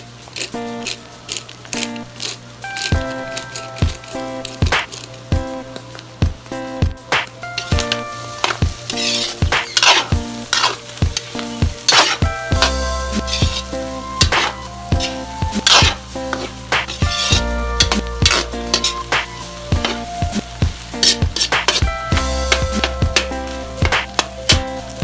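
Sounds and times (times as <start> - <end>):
meat frying: 0.0 - 25.0
metal spoon scraping a wok: 7.4 - 20.1, 21.0 - 21.9.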